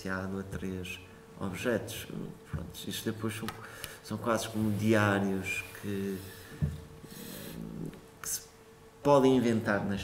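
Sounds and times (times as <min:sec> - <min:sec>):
man speaking quietly: 0:00.0 - 0:06.3
faint steady hum: 0:00.0 - 0:10.0.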